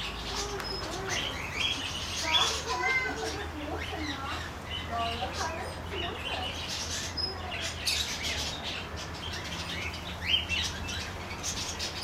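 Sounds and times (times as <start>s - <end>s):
birds chirping and tweeting: 0.0s - 12.0s.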